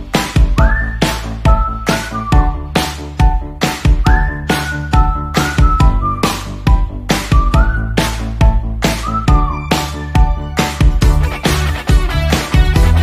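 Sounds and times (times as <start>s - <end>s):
bass line: 0.0s - 13.0s
whistled melody: 0.3s - 11.8s
drum beat: 5.0s - 13.0s.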